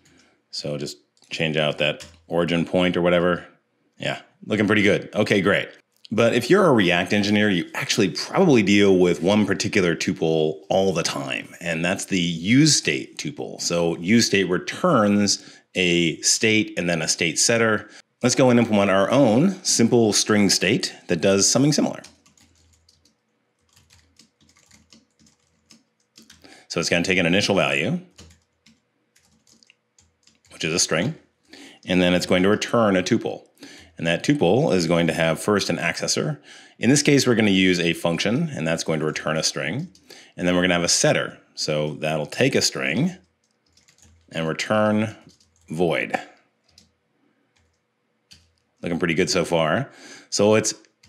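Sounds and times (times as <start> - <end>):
faint keyboard typing: 0.0 - 2.8, 20.1 - 34.6, 39.2 - 40.2, 42.4 - 48.9
keyboard keys clicking: 21.7 - 26.5, 28.1 - 30.7, 43.4 - 44.3, 45.3 - 45.7.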